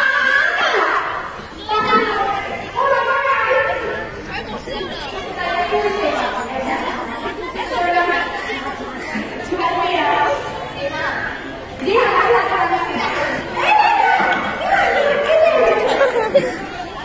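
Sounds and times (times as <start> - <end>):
crowd chatter: 0.0 - 17.0
girls talking: 0.0 - 17.0.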